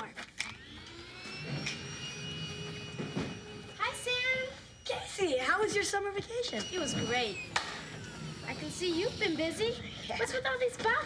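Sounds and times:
high electric whine rising: 0:00.4 - 0:10.8.

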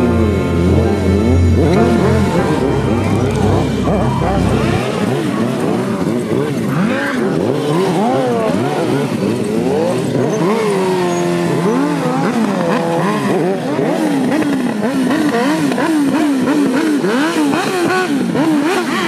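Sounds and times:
motorcycles revving hard: 0:00.0 - 0:19.0.

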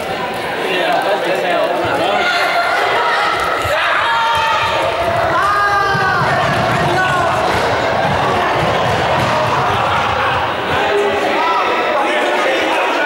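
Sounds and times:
footfalls on sports hall floor: 0:03.5 - 0:11.3.

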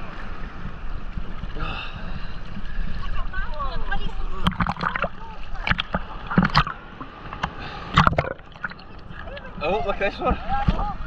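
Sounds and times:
water sloshing and splashing: 0:00.0 - 0:11.0.

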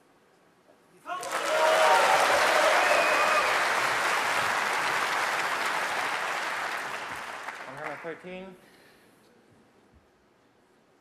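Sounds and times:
shouts and cheers: 0:01.1 - 0:03.9
audience applauding: 0:01.1 - 0:08.3.

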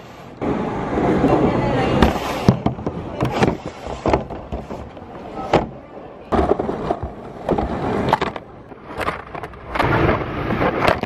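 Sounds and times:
knocks and clunks on conveyor: 0:02.0 - 0:08.4.

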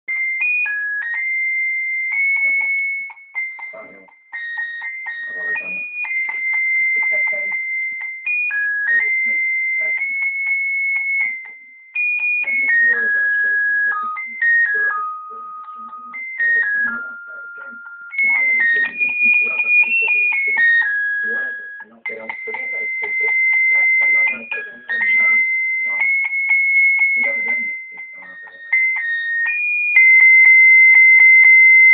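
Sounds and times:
toy playing tinny electronic tune: 0:00.2 - 0:31.9.

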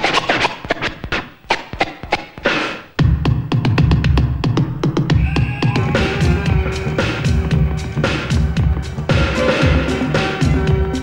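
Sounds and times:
vinyl record scratching: 0:00.0 - 0:04.3, 0:05.1 - 0:10.3
bass-heavy beat: 0:01.8 - 0:11.0.

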